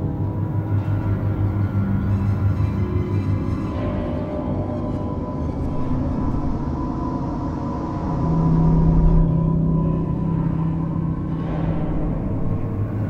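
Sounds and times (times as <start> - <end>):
dark ambient drone music: 0.0 - 13.0.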